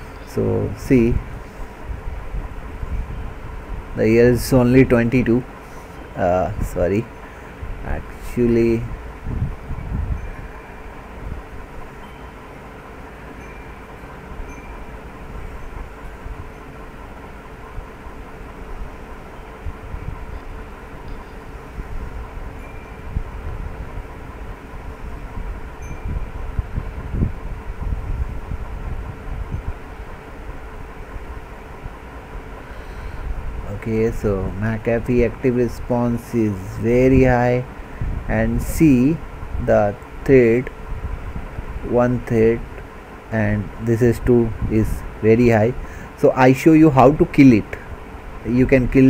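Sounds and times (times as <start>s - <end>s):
faint constant hum: 0.0s - 49.0s
low rumbling: 0.0s - 49.0s.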